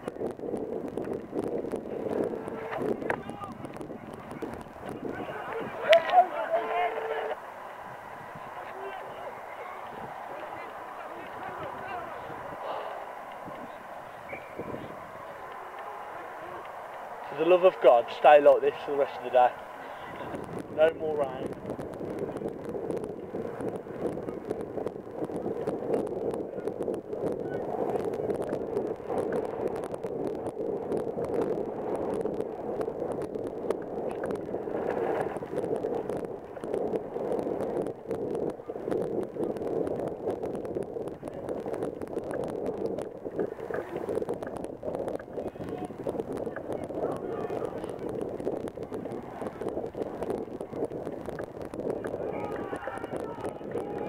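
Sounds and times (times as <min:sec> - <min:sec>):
distant shouting of players and crowd: 0:02.3 - 0:20.4, 0:52.1 - 0:54.0.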